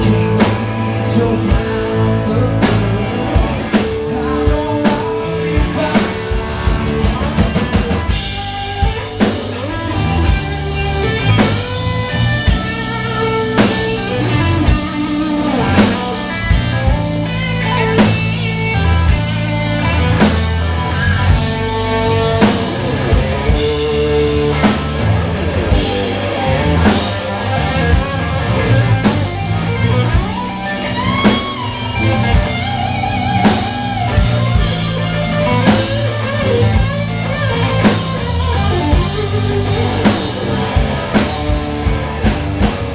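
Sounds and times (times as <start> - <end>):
lead guitar bending notes: 0.0 - 42.9
live blues band playing: 0.0 - 42.9.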